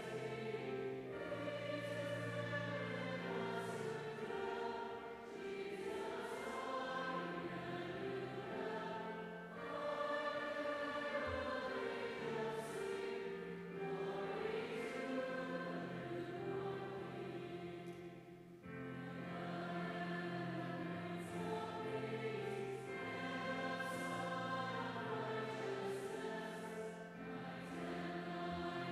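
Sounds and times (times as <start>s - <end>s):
choir singing: 0.0s - 28.9s.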